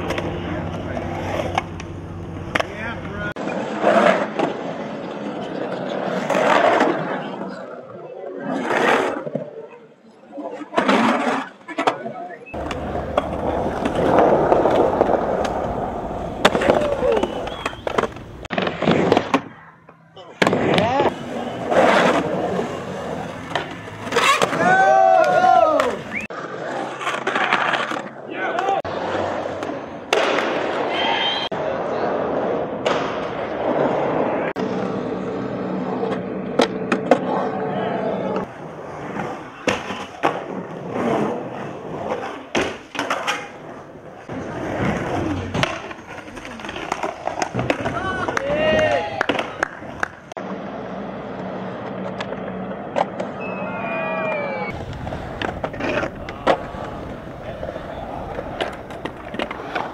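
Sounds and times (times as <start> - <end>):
skateboard clacks: 0.0 - 7.2, 10.8 - 19.5, 38.3 - 50.5, 54.2 - 59.9
skateboard wheels rolling on concrete: 0.0 - 59.9.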